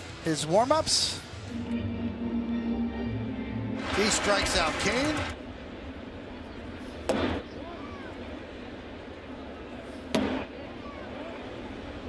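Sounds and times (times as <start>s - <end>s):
crowd murmur: 6.0s - 12.0s
baseball smacking into mitt: 7.1s - 7.4s, 10.1s - 10.4s.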